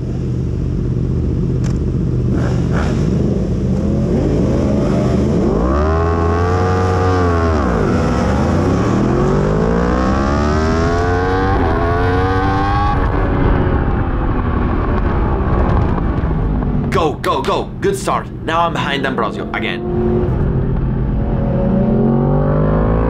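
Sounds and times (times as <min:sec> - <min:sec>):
motorcycle engine revving: 0:00.0 - 0:16.9, 0:19.4 - 0:23.0
rushing wind noise: 0:10.6 - 0:18.8.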